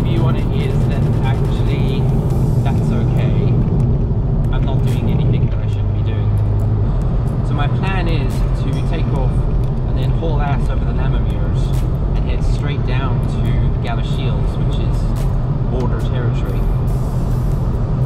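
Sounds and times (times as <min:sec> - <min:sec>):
man talking: 0:00.0 - 0:03.6, 0:04.5 - 0:06.4, 0:07.4 - 0:16.8
car low rumble: 0:00.0 - 0:18.0.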